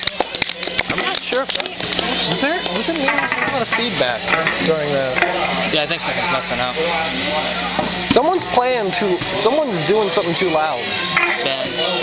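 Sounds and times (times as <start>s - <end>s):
people talking: 0.0s - 12.0s
steady low hum: 0.0s - 12.0s.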